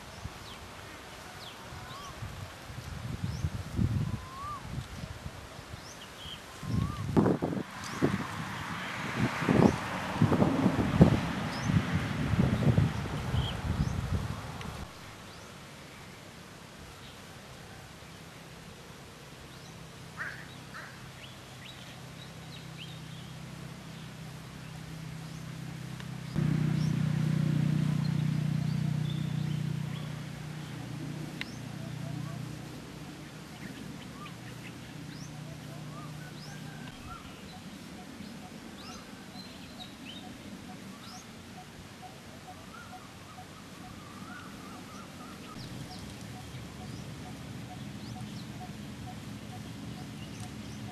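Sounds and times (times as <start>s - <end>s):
low background noise: 0.0s - 50.9s
low steady hum: 22.9s - 37.5s
bird singing wavering phrase: 27.9s - 37.5s.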